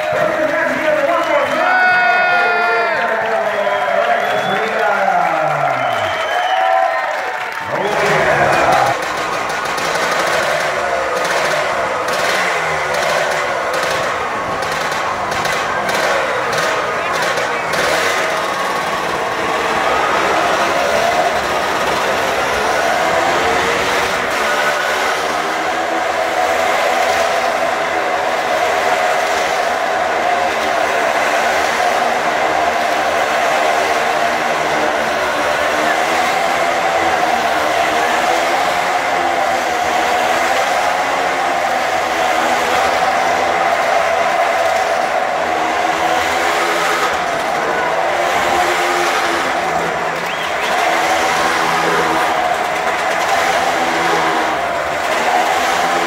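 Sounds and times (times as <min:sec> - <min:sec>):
motorcycle engines revving: 0:00.0 - 0:56.0.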